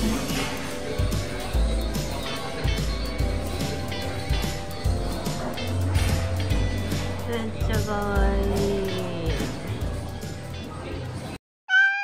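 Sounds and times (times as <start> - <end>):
cafe room noise: 0.0 - 11.4
faint background music: 0.0 - 11.4
high-pitched meow-like call: 11.7 - 12.0.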